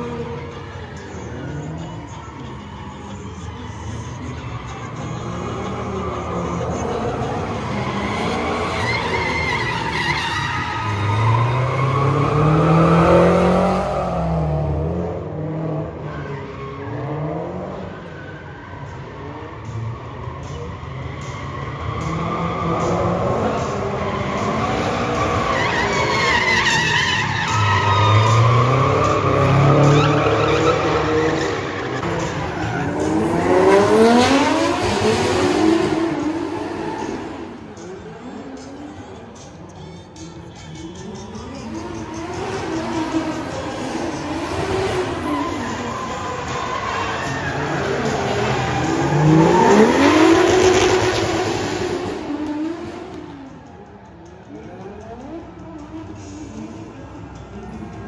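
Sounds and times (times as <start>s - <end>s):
car engines revving: 0.0s - 58.0s
tyres screeching: 3.1s - 14.1s, 18.0s - 38.8s, 39.4s - 51.4s.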